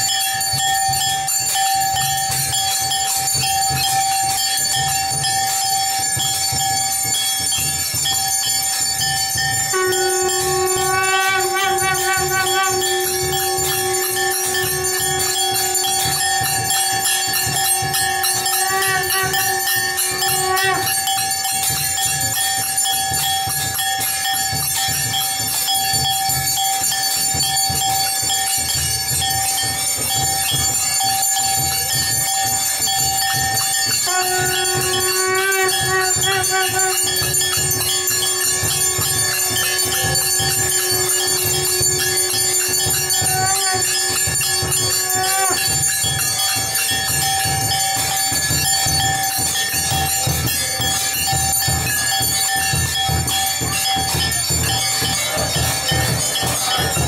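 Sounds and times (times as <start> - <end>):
low rhythmic beat: 0.0 - 57.0
steady held tone: 0.0 - 57.0
temple bells ringing: 0.0 - 57.0.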